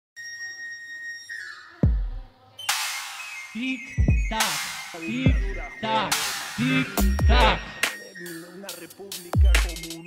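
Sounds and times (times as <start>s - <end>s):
whistling tone sliding down: 0.2s - 1.8s.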